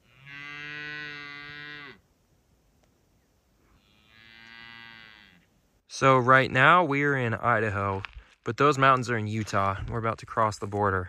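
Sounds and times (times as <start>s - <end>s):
cattle mooing: 0.0s - 2.0s, 3.7s - 5.5s.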